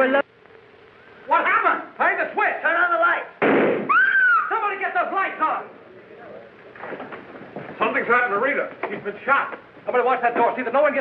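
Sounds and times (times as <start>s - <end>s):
people talking: 1.3s - 3.3s, 4.5s - 6.8s, 7.8s - 11.0s
pistol shot: 3.4s - 3.9s
high cry: 3.9s - 4.7s.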